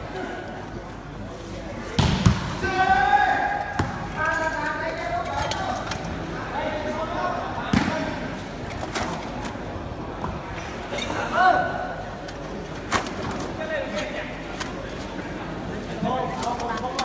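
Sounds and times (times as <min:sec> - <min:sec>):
volleyball being struck: 0:02.0 - 0:02.6.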